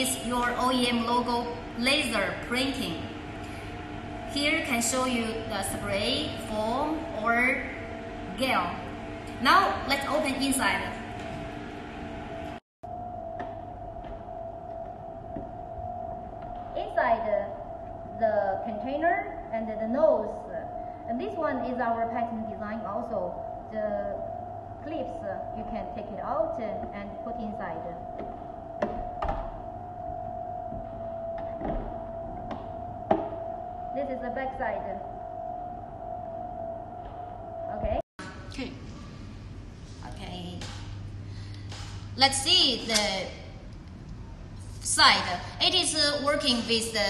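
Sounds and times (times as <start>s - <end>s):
high steady hum: 0.0s - 47.0s
steady background tone: 0.0s - 47.0s.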